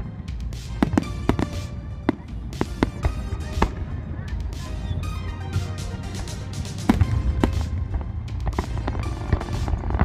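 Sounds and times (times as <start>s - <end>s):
music with steady tones: 0.0s - 10.0s
fireworks bursting: 0.5s - 5.0s, 6.1s - 10.0s.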